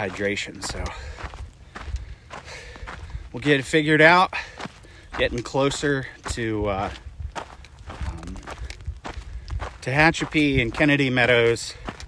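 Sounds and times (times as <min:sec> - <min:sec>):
footsteps on dirt trail: 0:00.0 - 0:12.0.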